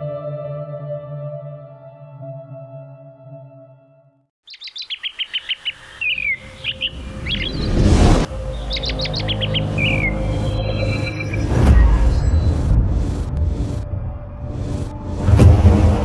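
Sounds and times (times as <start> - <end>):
birds chirping: 4.4 - 12.7
rising whoosh: 6.9 - 8.7
soft ambient music: 8.3 - 16.0.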